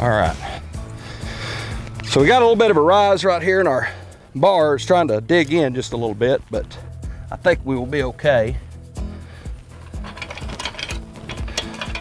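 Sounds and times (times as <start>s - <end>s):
rapid metal clicks of chain tool: 9.8s - 12.0s.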